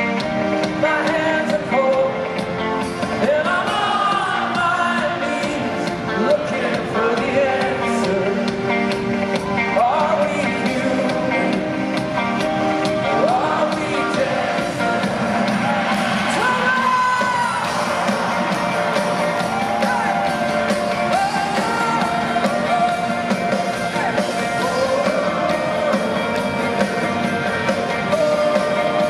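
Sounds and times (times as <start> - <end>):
keyboards: 0.0 - 29.0
person singing: 0.5 - 15.2, 18.5 - 29.0
drum beat: 2.8 - 29.0
crowd whooping: 13.4 - 29.0.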